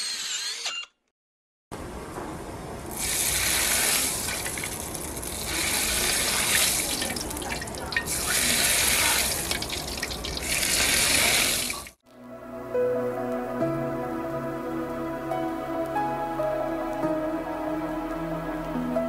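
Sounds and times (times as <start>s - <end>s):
hot oil sizzling on meat: 2.9s - 12.0s
music: 12.0s - 19.0s.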